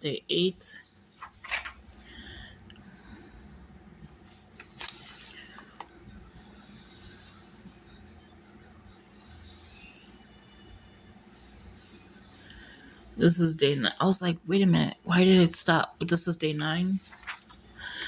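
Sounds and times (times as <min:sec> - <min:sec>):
notebook page turning: 0:01.2 - 0:01.8, 0:04.3 - 0:05.9, 0:17.0 - 0:17.6.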